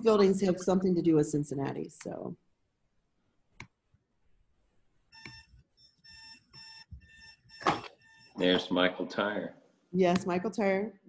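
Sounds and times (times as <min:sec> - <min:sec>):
electronic beeping alarm: 0:05.1 - 0:08.5.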